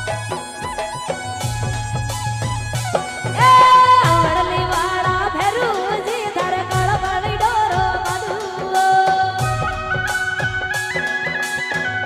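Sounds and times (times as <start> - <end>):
instrumental accompaniment: 0.0 - 12.0
woman singing through microphone: 3.4 - 10.4.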